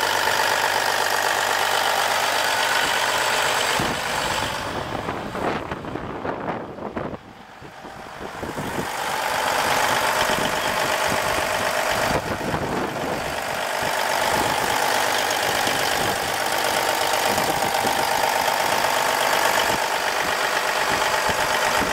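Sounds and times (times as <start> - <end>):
diesel engine idling: 0.0 - 21.9.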